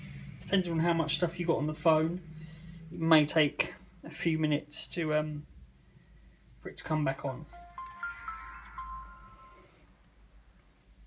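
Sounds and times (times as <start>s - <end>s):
phone startup chime: 7.5s - 10.0s.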